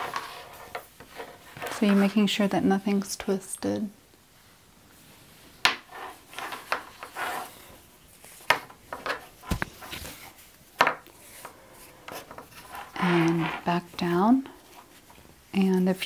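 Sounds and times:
fabric rubbing and rustling: 0.0 - 2.3, 5.0 - 15.4.

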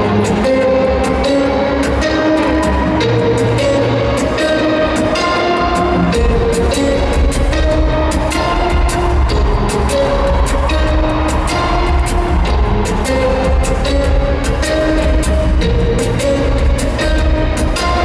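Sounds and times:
looped acoustic guitar melody: 0.0 - 18.0
percussive beat: 4.2 - 18.0.

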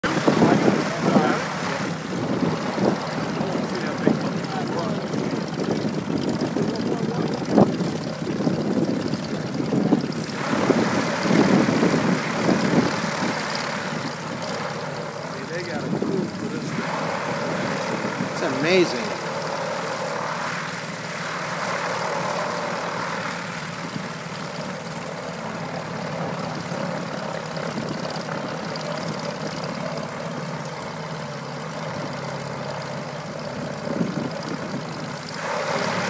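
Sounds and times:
people talking: 0.0 - 2.0, 3.3 - 5.8, 6.4 - 7.7, 9.2 - 10.2, 15.2 - 16.9, 18.3 - 19.2
propeller engines running: 0.0 - 36.0.

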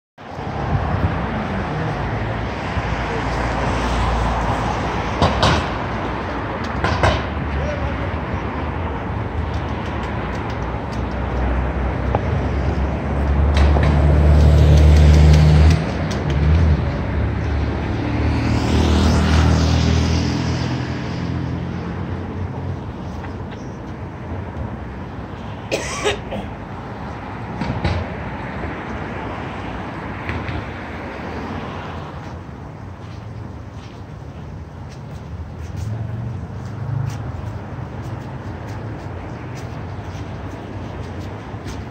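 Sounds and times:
steady traffic: 0.2 - 41.9
people's voices: 6.0 - 9.2.

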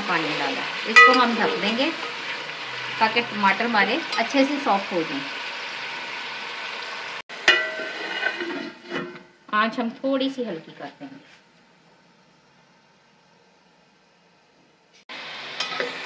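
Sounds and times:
sauce sizzling in a pot: 0.0 - 9.4, 15.1 - 16.0
metal lid clanging on pot: 1.0 - 1.4, 7.4 - 8.4
ladle stirring and scraping pot: 7.4 - 9.2, 15.6 - 16.0.

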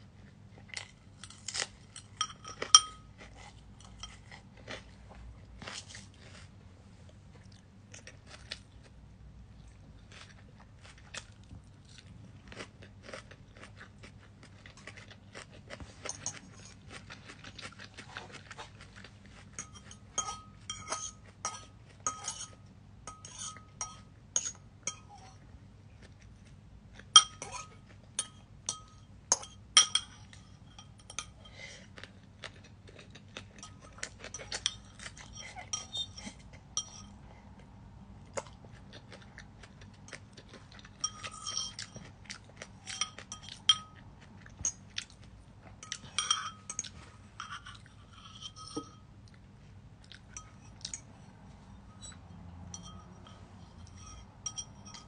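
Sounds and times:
fork clinking on ceramic bowl: 2.0 - 3.2, 3.8 - 4.4, 16.0 - 16.8, 19.5 - 25.4, 27.2 - 31.6, 33.5 - 37.2, 41.0 - 42.1, 42.8 - 44.0, 45.8 - 49.1, 50.3 - 51.2, 51.8 - 55.0.

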